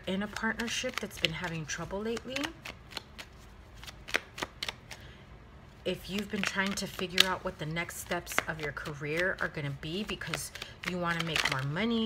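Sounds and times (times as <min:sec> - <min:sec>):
cards clicking and snapping: 0:00.3 - 0:05.0, 0:06.0 - 0:07.4, 0:08.2 - 0:11.8.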